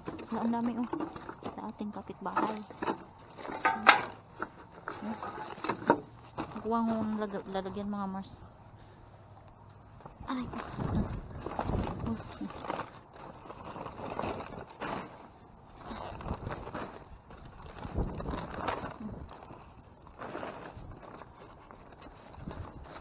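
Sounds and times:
plastic bags rustling: 0:00.0 - 0:08.4, 0:10.0 - 0:23.0.

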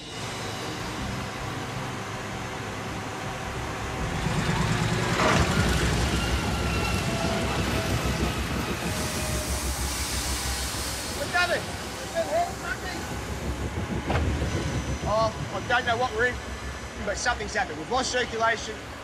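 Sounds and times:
hydraulic drill rig rumbling: 0:00.0 - 0:19.0.

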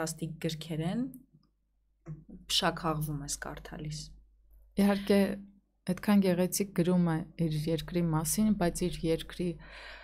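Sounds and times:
woman speaking: 0:00.0 - 0:01.3, 0:02.1 - 0:09.7.

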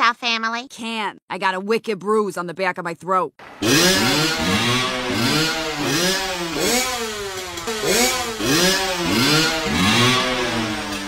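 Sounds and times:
dirt bike revving: 0:03.4 - 0:11.0.

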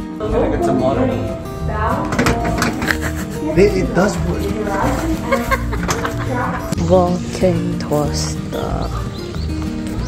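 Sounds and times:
country acoustic guitar music: 0:00.0 - 0:10.0.

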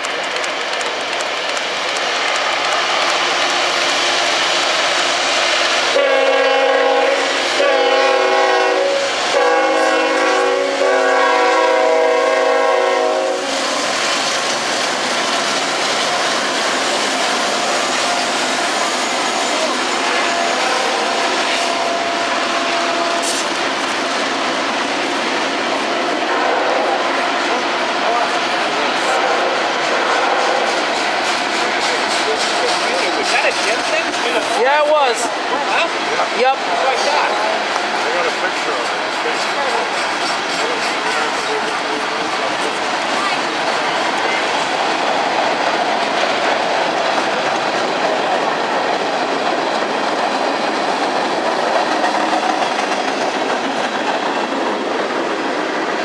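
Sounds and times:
freight train rolling on track: 0:00.0 - 0:56.0
locomotive horn blasts: 0:05.9 - 0:13.5.

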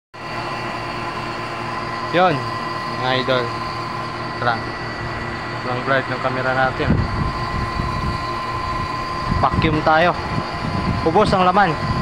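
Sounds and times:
vacuum pump motor humming: 0:00.2 - 0:12.0.

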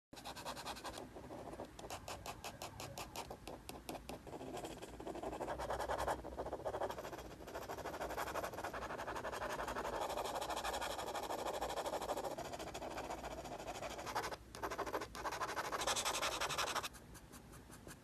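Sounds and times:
pen scratching on metal: 0:00.2 - 0:18.0.

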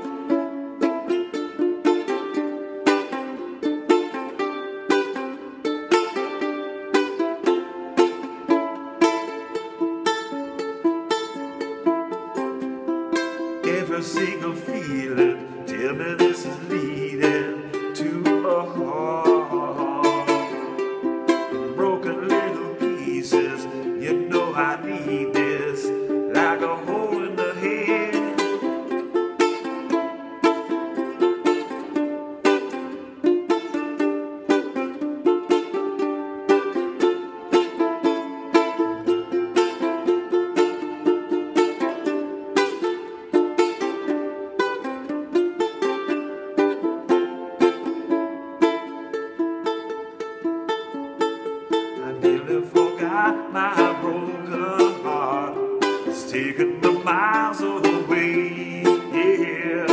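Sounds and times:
ukulele strumming chords: 0:00.0 - 0:59.9.

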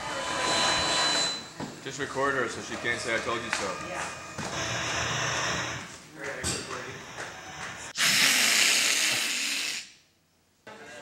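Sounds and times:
loud hiss: 0:07.9 - 0:10.0.

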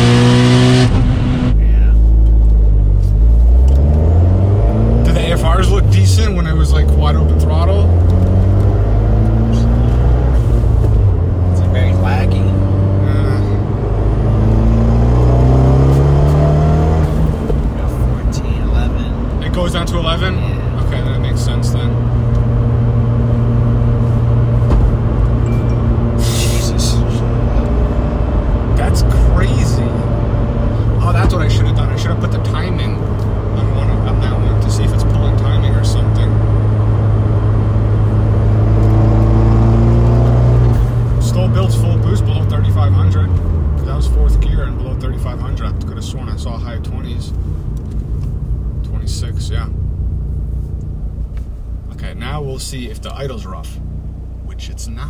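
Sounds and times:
car engine running steadily: 0:00.0 - 0:55.0.

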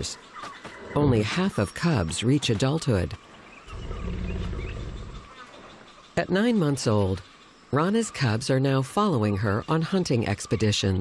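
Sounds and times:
tiger growling: 0:03.6 - 0:05.4.

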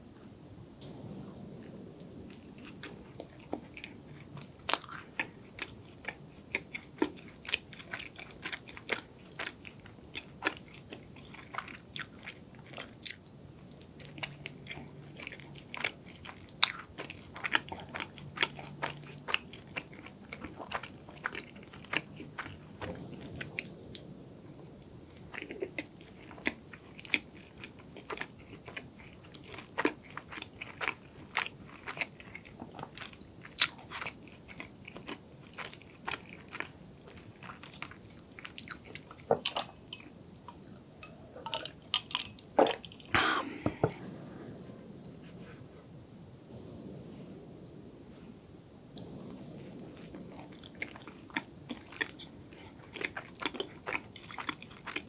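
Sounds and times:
chewing crunchy pastry: 0:02.3 - 0:43.7, 0:49.0 - 0:55.0.

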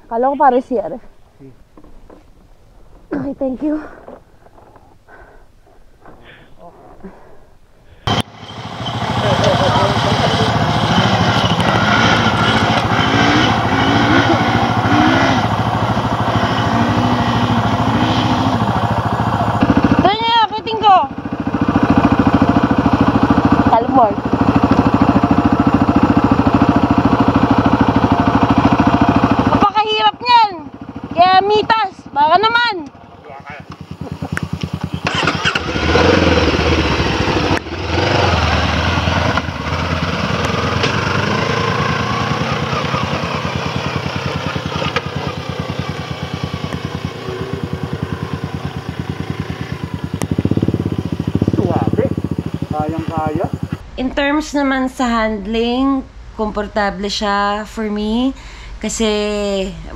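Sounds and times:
voices calling out: 0:08.0 - 0:21.6, 0:22.3 - 0:38.4
motorcycle engine idling: 0:08.0 - 0:53.9
motorcycle revving and riding off: 0:08.1 - 0:54.3.

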